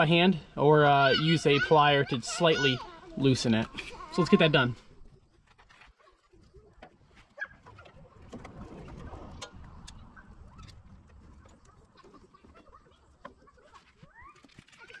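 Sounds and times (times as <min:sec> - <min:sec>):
chickens clucking: 0:00.9 - 0:14.2.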